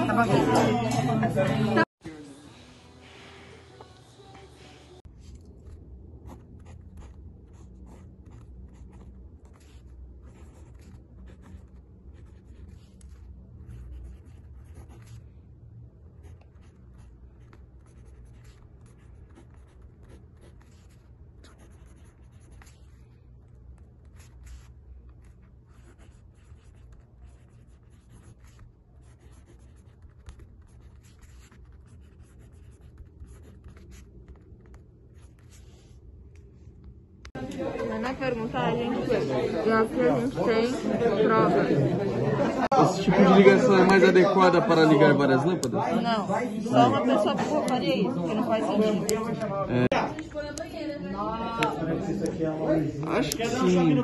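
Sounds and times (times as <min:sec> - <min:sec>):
pen scratching on paper: 0:05.6 - 0:15.4, 0:16.2 - 0:36.0.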